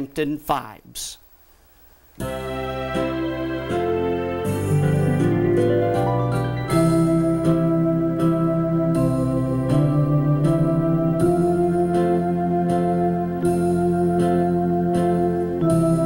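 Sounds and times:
automatic rhythm accompaniment: 2.0s - 16.0s
organ playing a slow waltz: 2.2s - 16.0s.

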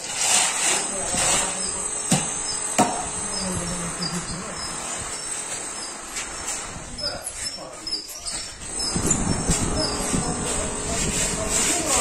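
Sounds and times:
metal straightedge scraping cement: 0.0s - 12.0s
high-pitched whine: 0.9s - 12.0s.

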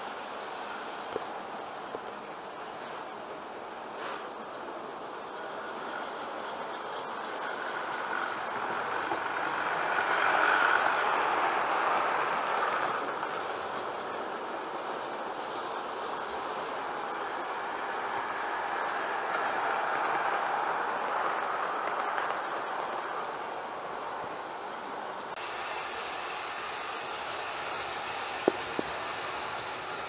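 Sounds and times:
model train running on track: 0.0s - 30.0s.

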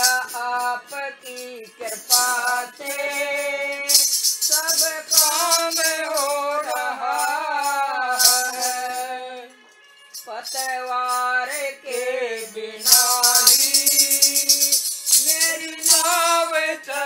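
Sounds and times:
woman singing devotional melody: 0.0s - 9.6s, 10.2s - 17.0s
shaken rattle: 0.0s - 17.0s.

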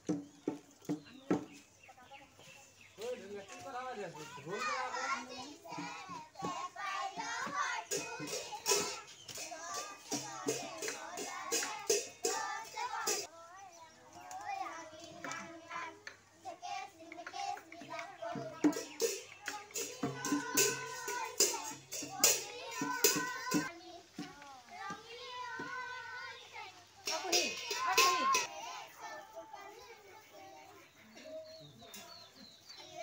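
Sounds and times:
sharp drum beats: 0.0s - 1.7s, 4.2s - 13.3s, 17.1s - 26.4s, 27.0s - 29.1s
children singing together: 4.2s - 33.0s.

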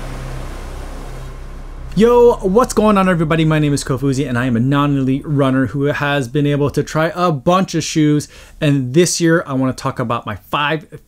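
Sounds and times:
background music sustained low note: 0.0s - 6.7s.

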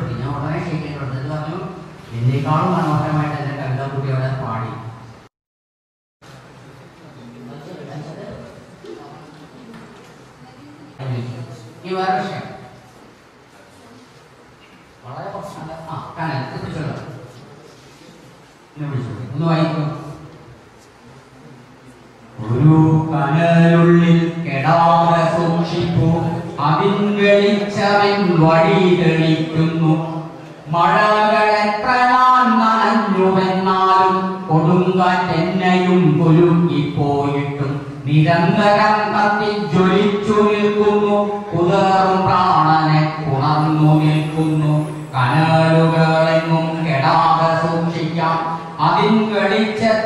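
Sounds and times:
man chanting a poem: 22.4s - 50.0s
man chanting in long notes: 38.2s - 50.0s.

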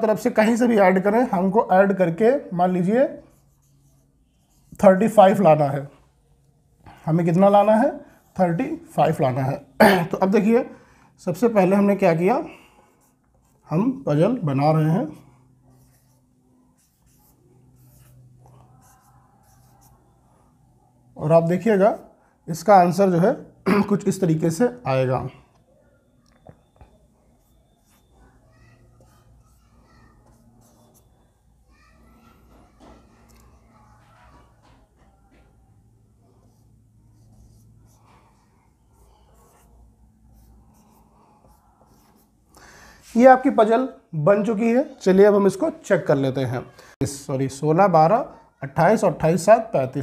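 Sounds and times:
marker pen on whiteboard: 0.1s - 10.7s, 11.3s - 20.6s, 26.3s - 31.4s, 32.0s - 43.6s
marker pen squeaking on whiteboard: 16.8s - 20.2s, 26.2s - 35.5s.

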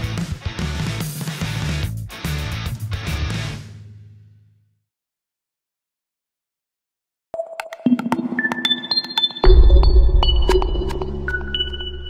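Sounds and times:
deep bass tone: 9.4s - 12.0s.

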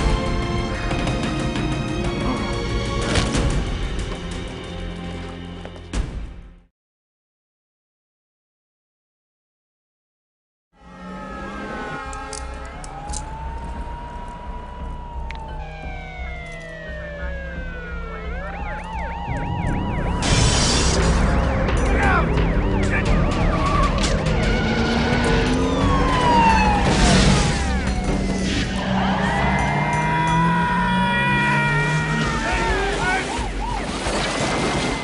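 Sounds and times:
police sirens wailing: 10.8s - 35.0s.

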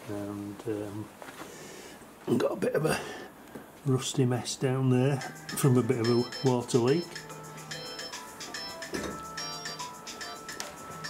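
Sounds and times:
background music chords: 5.0s - 11.0s.

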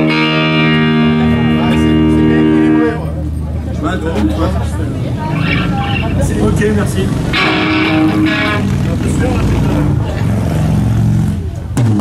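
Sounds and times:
electric guitar low notes: 0.0s - 3.6s, 5.1s - 12.0s
electric bass low notes: 0.0s - 12.0s.

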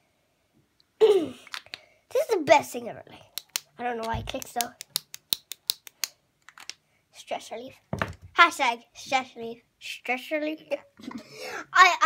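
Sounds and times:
sharp plastic clicking: 3.3s - 6.8s.

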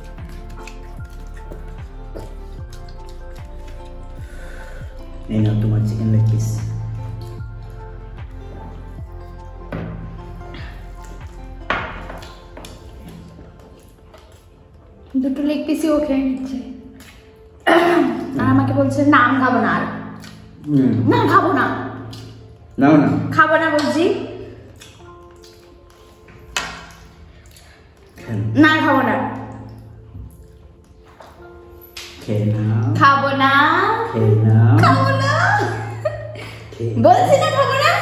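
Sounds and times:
soft background music: 0.0s - 38.0s.

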